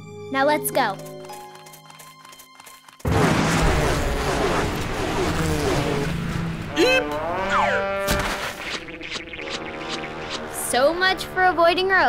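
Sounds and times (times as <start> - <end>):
background music with held notes: 0.0 - 2.8
cartoon thud: 7.5 - 8.9.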